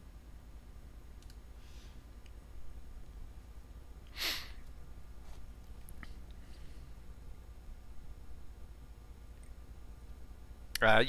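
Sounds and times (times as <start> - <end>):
steady low hum: 0.0 - 11.0
faint clicks: 1.2 - 1.4
short breath of air: 4.1 - 4.6.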